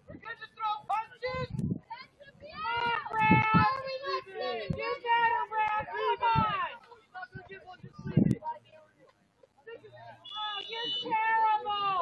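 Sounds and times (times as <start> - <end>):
people shouting drawn-out calls: 10.2 - 12.0.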